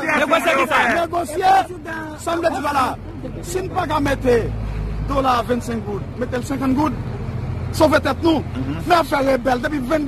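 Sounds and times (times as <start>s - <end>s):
low rumble of street noise: 0.0s - 10.0s.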